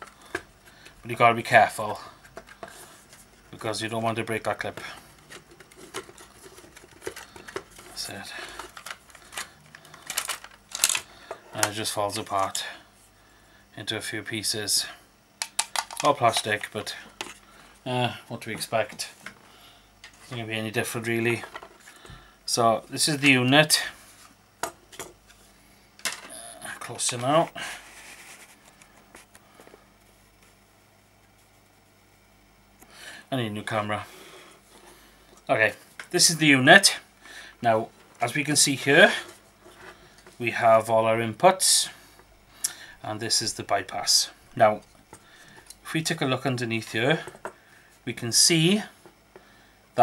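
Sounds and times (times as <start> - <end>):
steady low hum: 0.0 - 50.0
plastic casing clicking and scraping: 5.2 - 11.1.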